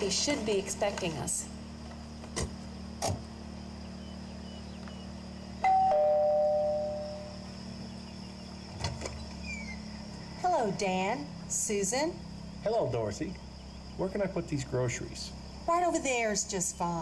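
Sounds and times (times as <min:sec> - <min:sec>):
two-note doorbell chime: 0:05.6 - 0:07.3.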